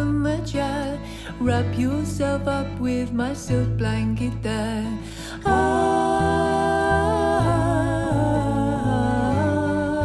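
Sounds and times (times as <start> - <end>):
acoustic guitar: 0.0 - 10.0
held bass notes: 1.6 - 10.0.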